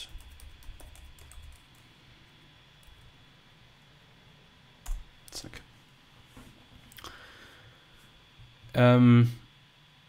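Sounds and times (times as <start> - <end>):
computer keyboard typing: 0.0 - 1.8.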